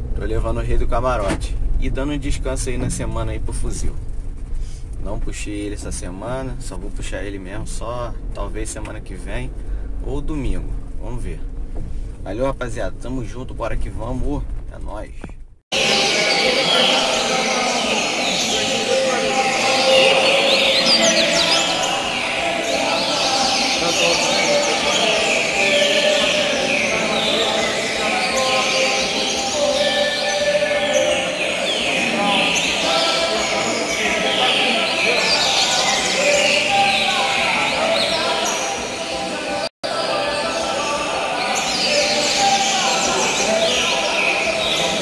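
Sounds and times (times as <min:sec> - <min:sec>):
man's voice: 0:00.0 - 0:04.0, 0:05.0 - 0:11.5, 0:12.2 - 0:45.0
people talking: 0:00.0 - 0:04.0, 0:05.0 - 0:11.4, 0:12.3 - 0:45.0
chorus of birds singing: 0:15.7 - 0:45.0.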